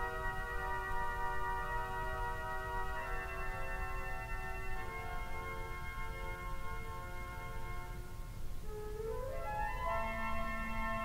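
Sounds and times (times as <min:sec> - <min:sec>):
pipe organ soft chords: 0:00.0 - 0:11.0.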